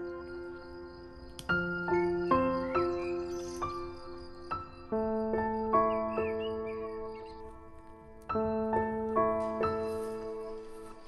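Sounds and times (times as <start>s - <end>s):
bird chirping: 0.0s - 11.0s
soft keyboard music: 0.0s - 11.0s.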